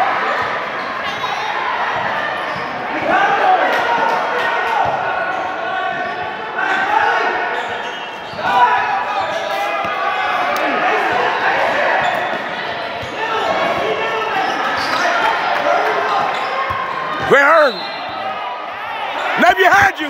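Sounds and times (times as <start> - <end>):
people calling out: 15.6 - 18.2, 19.1 - 20.0.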